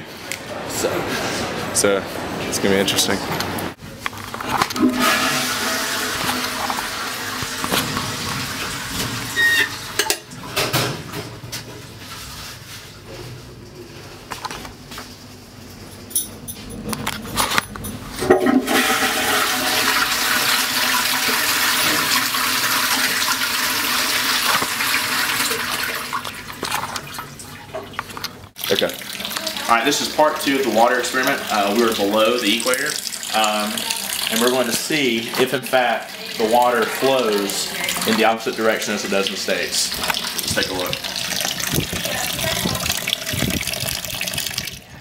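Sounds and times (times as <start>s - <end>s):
toilet flushing: 4.4s - 11.6s, 18.2s - 45.0s.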